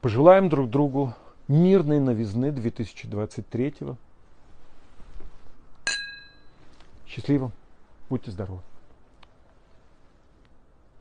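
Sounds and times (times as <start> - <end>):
wine glass clink: 5.9 - 6.6.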